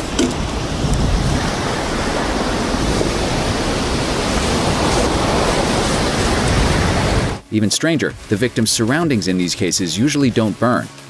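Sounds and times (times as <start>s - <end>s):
wind gust rushing: 0.0s - 7.4s.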